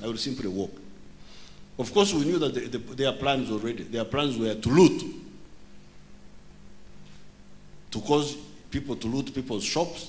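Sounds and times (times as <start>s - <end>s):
man speaking into a microphone: 0.0s - 0.8s, 1.8s - 5.3s, 7.9s - 10.0s
low hum from speakers: 0.0s - 10.0s.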